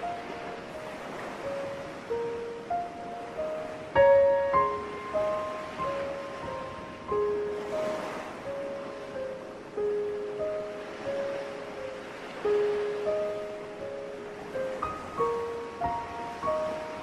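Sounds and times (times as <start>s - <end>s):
ocean surf: 0.0s - 17.0s.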